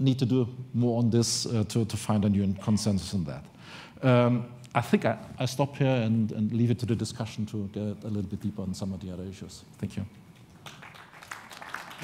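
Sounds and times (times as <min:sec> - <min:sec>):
group clapping: 0:10.6 - 0:12.0.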